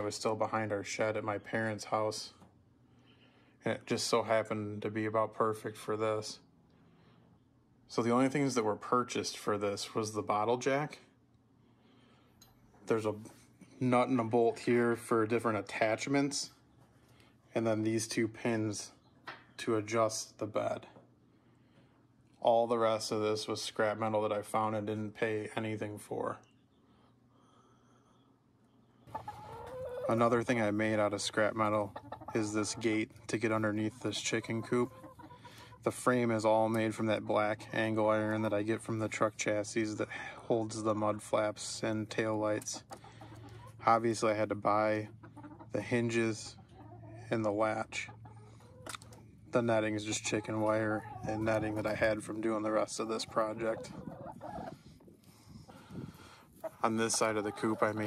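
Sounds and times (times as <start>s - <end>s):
chicken clucking: 29.0s - 40.0s, 42.4s - 58.0s.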